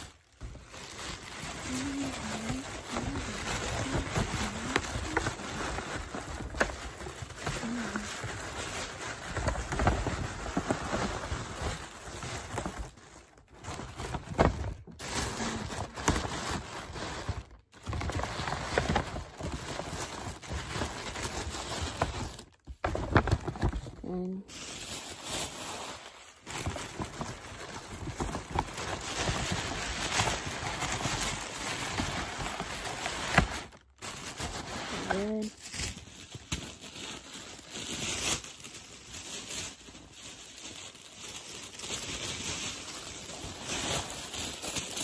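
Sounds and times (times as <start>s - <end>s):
sharp paper crackles: 0.0s - 45.0s
tissue paper rustling: 0.0s - 45.0s
person humming: 1.6s - 5.6s.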